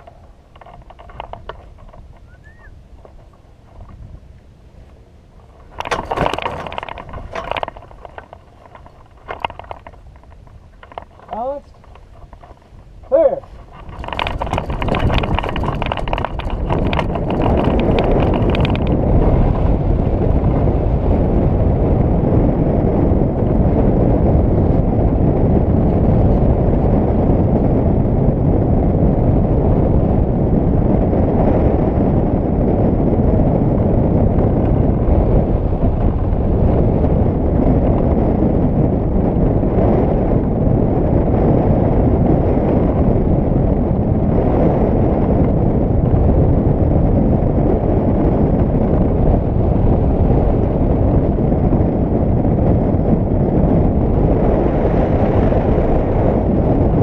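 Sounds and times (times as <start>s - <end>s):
heavy wind buffeting microphone: 0.0s - 57.0s.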